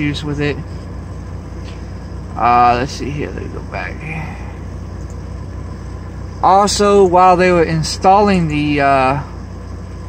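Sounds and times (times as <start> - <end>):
engine idling: 0.0 - 10.0.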